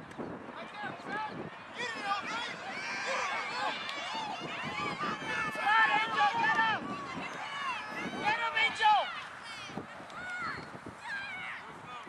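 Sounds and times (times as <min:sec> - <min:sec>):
crowd yelling and cheering: 0:00.5 - 0:12.0.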